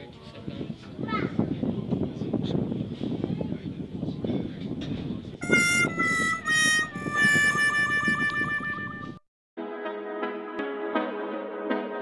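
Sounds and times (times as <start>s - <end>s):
harmonica held chord: 5.4s - 9.2s.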